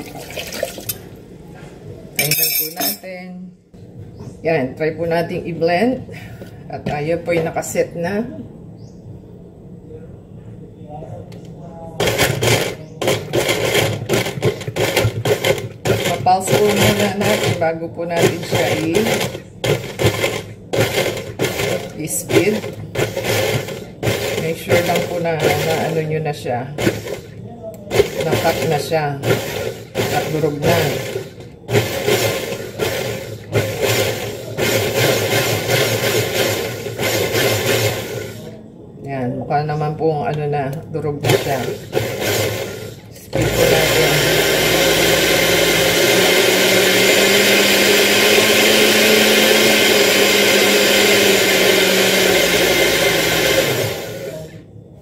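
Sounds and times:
electric blender chopping fruit: 0:12.0 - 0:26.2, 0:26.8 - 0:27.3, 0:27.9 - 0:38.5, 0:41.2 - 0:54.6.

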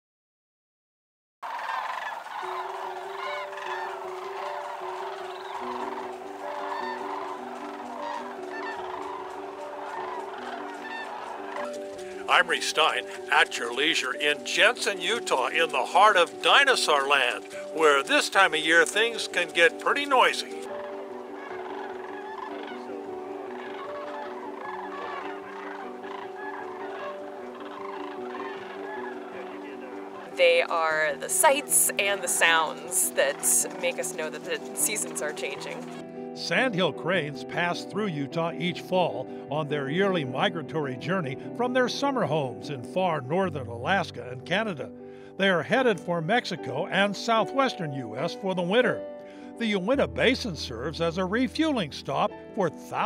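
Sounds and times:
sandhill cranes calling: 0:01.4 - 0:36.0
sustained background music: 0:01.5 - 0:53.0.

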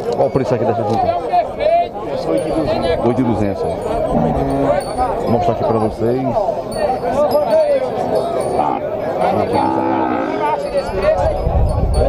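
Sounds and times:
crowd chatter: 0:00.0 - 0:12.0
cow mooing: 0:04.1 - 0:05.1, 0:08.6 - 0:10.6.

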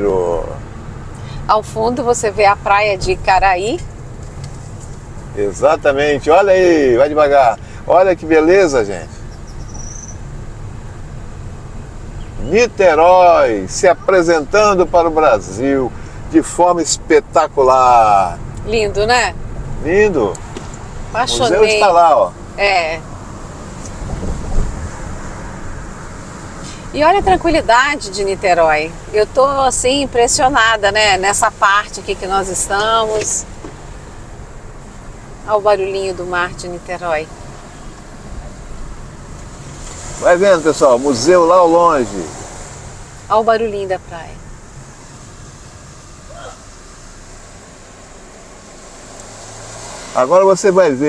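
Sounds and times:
car driving road noise: 0:00.0 - 0:51.0
wind buffeting microphone: 0:23.9 - 0:26.1.

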